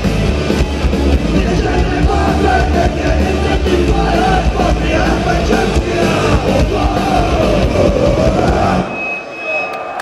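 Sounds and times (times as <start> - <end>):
punk rock band playing live: 0.0 - 9.1
crowd noise: 0.0 - 10.0.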